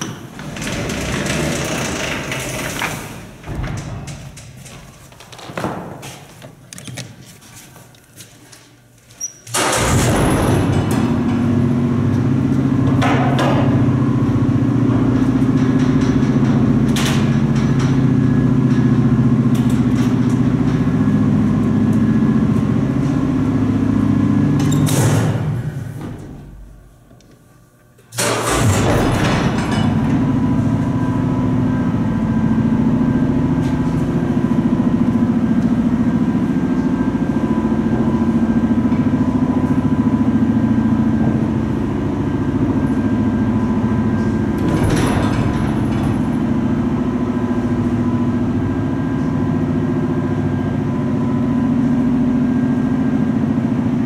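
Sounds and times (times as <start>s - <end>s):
elevator mechanical hum: 0.0s - 54.0s.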